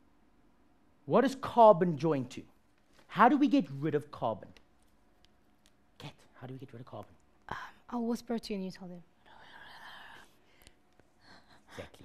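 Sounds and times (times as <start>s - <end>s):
person whispering: 11.4s - 12.0s.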